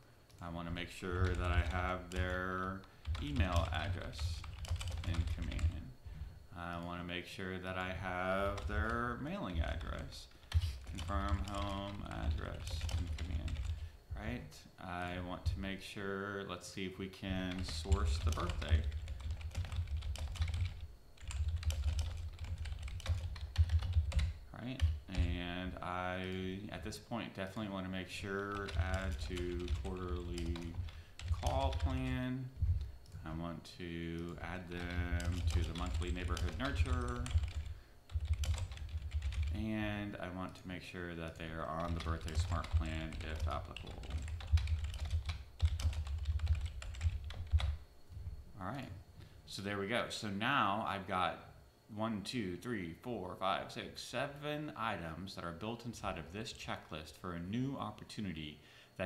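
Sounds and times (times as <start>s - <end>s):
fast typing on keyboard: 0.7s - 5.8s, 7.8s - 13.8s, 17.4s - 25.5s, 28.2s - 32.3s, 34.2s - 39.7s, 41.3s - 47.8s.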